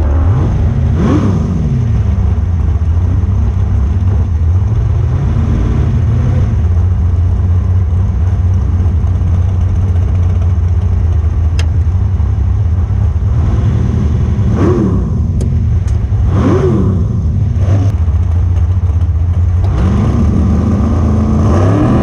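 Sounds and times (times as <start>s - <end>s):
dragster engine idling and revving: 0.0s - 22.0s.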